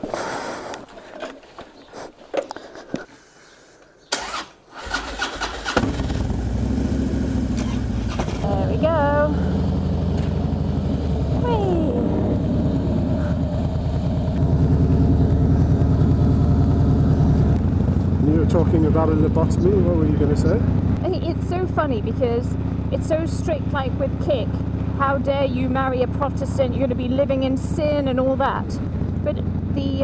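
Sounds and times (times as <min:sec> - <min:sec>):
starter clicks: 0:04.1 - 0:05.9
motorcycle engine starting and idling: 0:04.1 - 0:30.0.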